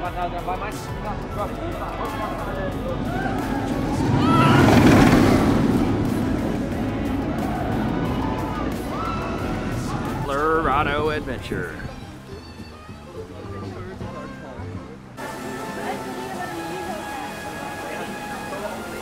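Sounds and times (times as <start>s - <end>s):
background music: 0.0s - 19.0s
voices: 0.0s - 19.0s
roller coaster rushing past: 2.0s - 12.1s.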